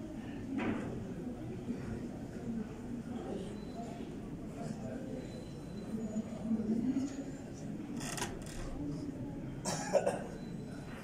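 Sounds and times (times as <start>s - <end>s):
low background murmur: 0.0s - 11.0s
person coughing: 9.7s - 10.3s.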